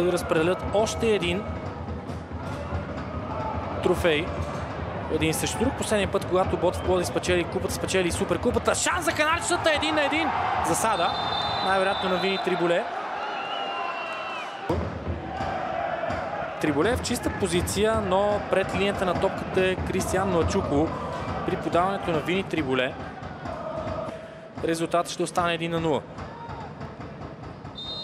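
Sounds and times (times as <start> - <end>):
stadium crowd noise: 0.0 - 28.0
thin high whistle: 11.0 - 12.6, 27.8 - 28.0.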